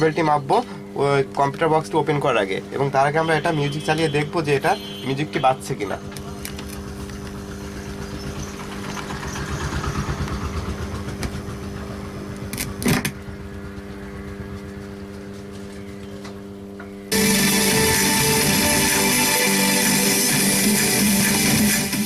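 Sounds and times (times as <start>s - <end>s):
electrical hum and buzz: 0.0s - 22.0s
loud music from speakers: 17.1s - 22.0s.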